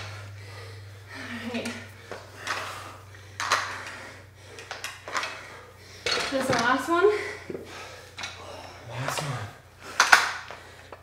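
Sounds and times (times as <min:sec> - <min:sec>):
metal dumbbells knocking and clinking: 0:03.4 - 0:04.0, 0:04.6 - 0:07.0.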